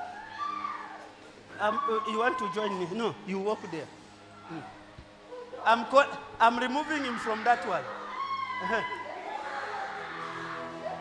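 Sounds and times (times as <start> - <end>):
faint crowd chatter: 0.0 - 11.0.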